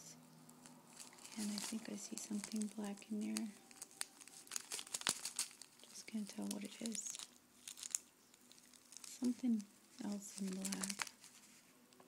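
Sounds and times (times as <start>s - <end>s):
plastic baggie crinkling: 0.5s - 11.7s.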